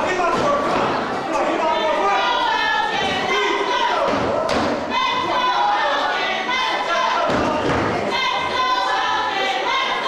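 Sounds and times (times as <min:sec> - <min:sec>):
voices shouting in hall: 0:00.0 - 0:10.0.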